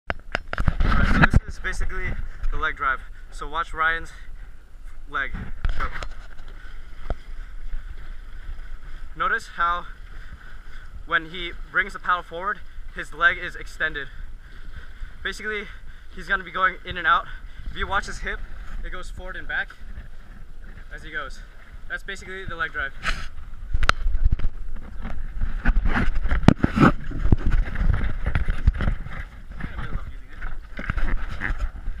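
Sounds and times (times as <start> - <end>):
camera handling knocks and bumps: 0.1 - 1.4, 23.8 - 29.1
wind buffeting microphone: 0.1 - 32.0
paddle stroke in water: 4.3 - 32.0.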